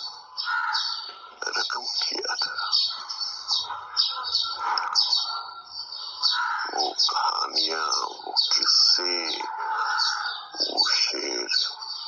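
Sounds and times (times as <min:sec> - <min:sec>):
indistinct low speech: 0:06.6 - 0:09.6.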